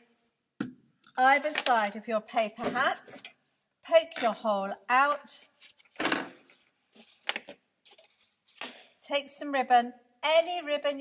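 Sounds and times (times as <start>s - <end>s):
paper rustling: 5.6s - 8.8s.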